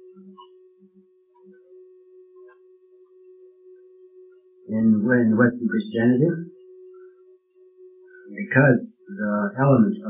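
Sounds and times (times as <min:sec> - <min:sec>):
soft low blips: 0:00.0 - 0:10.0
tape recorder hum: 0:00.0 - 0:10.0.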